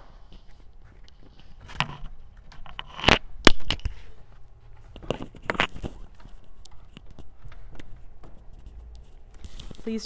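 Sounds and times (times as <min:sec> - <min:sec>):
footsteps on hard floor: 0:03.8 - 0:10.0.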